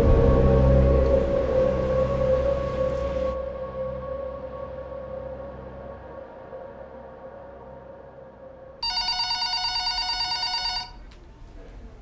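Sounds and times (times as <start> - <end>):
low music drone: 0.0 - 8.9
telephone ringing: 8.8 - 11.0.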